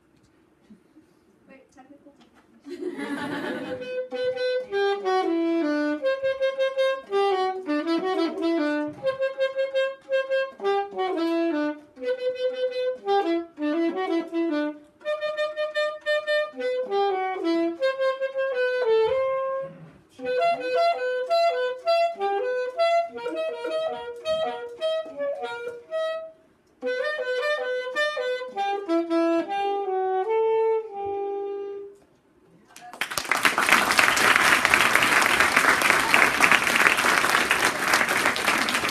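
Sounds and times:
solo saxophone melody: 0:03.6 - 0:32.0, 0:33.5 - 0:38.9
loud applause: 0:32.8 - 0:38.9.

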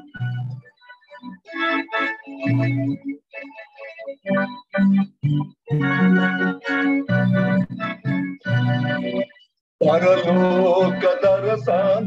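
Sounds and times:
electronic organ slow melody: 0:00.0 - 0:12.0.

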